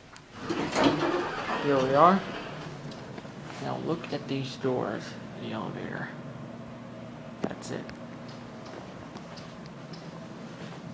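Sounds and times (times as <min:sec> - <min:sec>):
steady low hum: 0:00.0 - 0:10.9.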